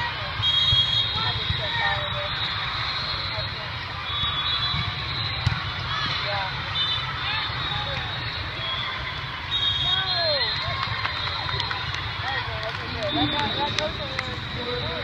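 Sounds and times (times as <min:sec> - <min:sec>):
many voices talking: 0:00.0 - 0:15.0.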